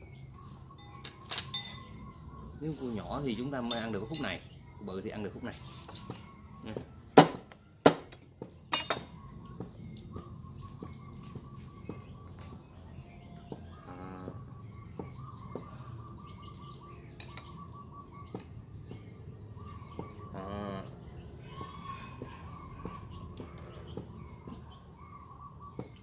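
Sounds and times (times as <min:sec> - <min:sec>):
faint birds chirping: 0:00.0 - 0:26.0
cleaver chopping on wooden block: 0:07.2 - 0:08.1.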